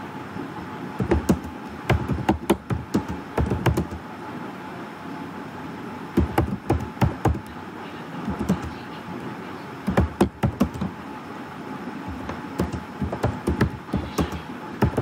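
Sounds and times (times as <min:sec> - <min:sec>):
computer keyboard typing: 0:01.0 - 0:04.0, 0:08.3 - 0:08.8, 0:09.9 - 0:11.0, 0:12.1 - 0:15.0.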